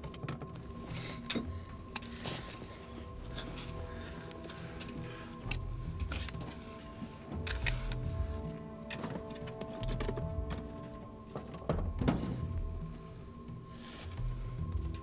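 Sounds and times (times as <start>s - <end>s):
background music with held tones: 0.0s - 15.0s.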